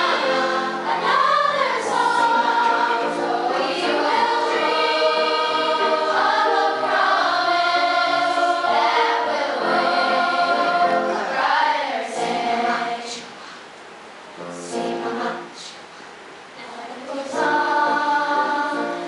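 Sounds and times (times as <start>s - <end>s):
children's choir singing: 0.0s - 13.4s, 14.4s - 15.8s, 16.6s - 19.0s.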